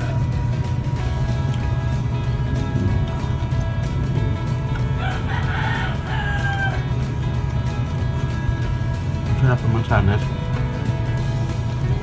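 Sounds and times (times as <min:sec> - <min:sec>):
background music: 0:00.0 - 0:12.0
rooster crowing: 0:04.9 - 0:07.0.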